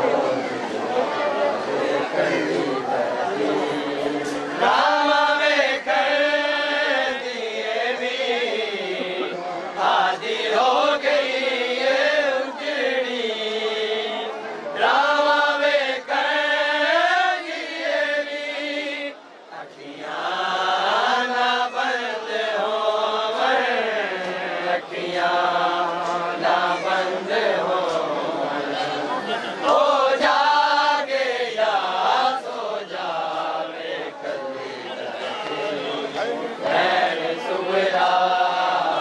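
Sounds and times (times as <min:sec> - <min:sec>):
voices chanting a lament: 0:00.0 - 0:39.0.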